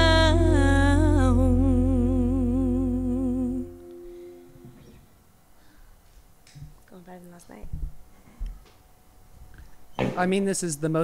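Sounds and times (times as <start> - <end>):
band sustained chord and bass: 0.0 - 4.8
woman singing with vibrato: 0.0 - 4.8.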